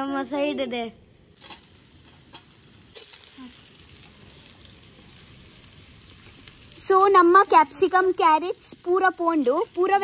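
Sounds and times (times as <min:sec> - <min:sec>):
vegetables sizzling in a pan: 0:01.2 - 0:10.0.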